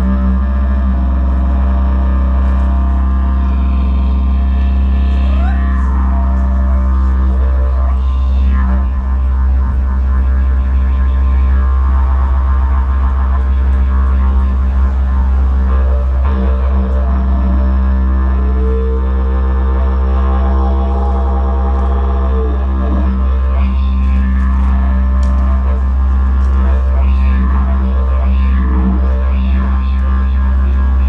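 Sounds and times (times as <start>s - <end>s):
didgeridoo drone: 0.0s - 31.0s.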